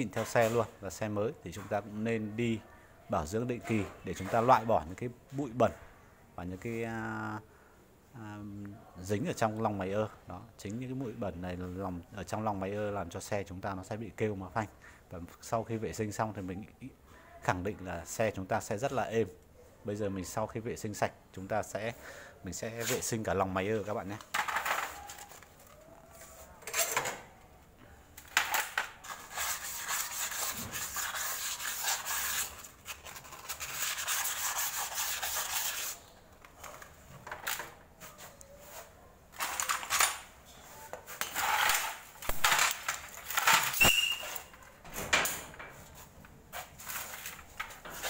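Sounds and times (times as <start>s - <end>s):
knocks and scrapes: 28.9s - 35.9s.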